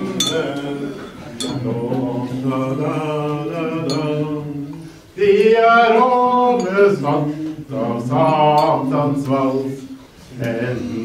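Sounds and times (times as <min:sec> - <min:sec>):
voices chanting on held notes: 0:00.0 - 0:11.0.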